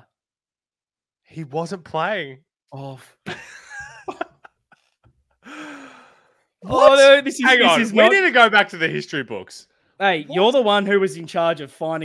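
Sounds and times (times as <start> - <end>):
man gasping and stifled laughter: 5.5 - 6.1
man groaning: 6.8 - 8.2.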